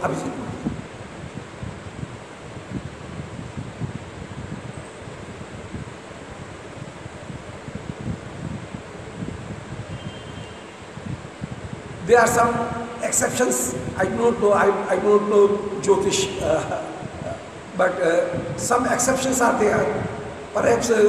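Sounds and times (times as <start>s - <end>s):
steady background hiss: 0.0s - 21.0s
wind buffeting microphone: 0.0s - 21.0s.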